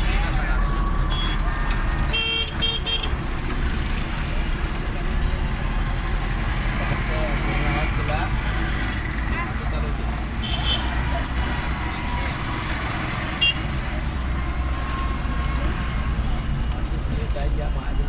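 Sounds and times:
engine and road rumble: 0:00.0 - 0:18.0.

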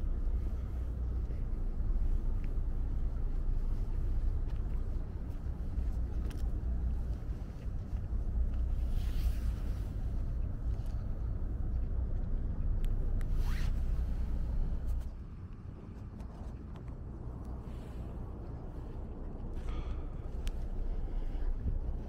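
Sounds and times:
wind rumbling on microphone: 0:00.0 - 0:22.0.

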